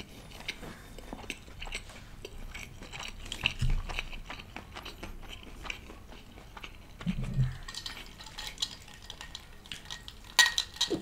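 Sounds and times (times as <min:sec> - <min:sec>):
glass clinking and rattling: 0:07.4 - 0:11.0.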